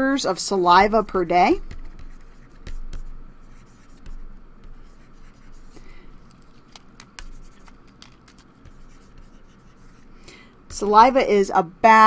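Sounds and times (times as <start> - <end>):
stylus scratching on tablet screen: 0.8 - 11.3
stylus tapping: 1.4 - 11.0.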